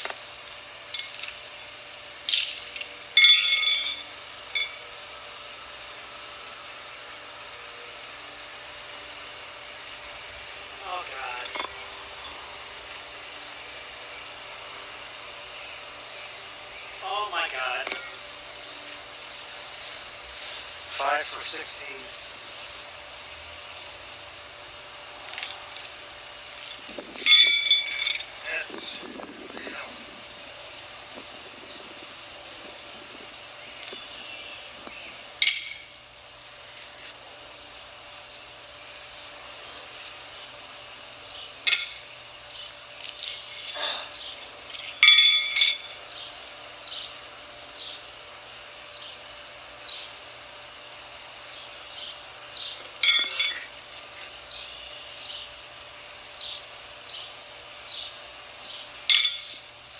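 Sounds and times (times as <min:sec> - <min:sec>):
horseshoes clanking against metal: 0:00.9 - 0:01.5, 0:02.3 - 0:04.8, 0:27.2 - 0:28.3, 0:35.4 - 0:36.0, 0:41.6 - 0:42.0, 0:43.2 - 0:46.0, 0:52.8 - 0:53.8, 0:59.1 - 0:59.6.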